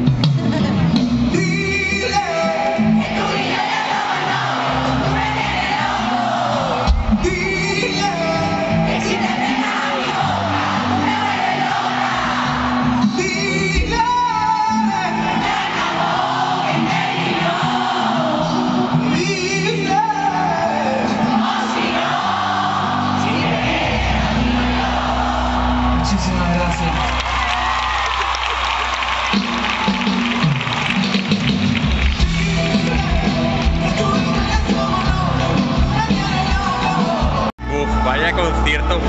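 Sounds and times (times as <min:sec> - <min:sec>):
live band with singing: 0:00.0 - 0:27.8, 0:28.6 - 0:39.0.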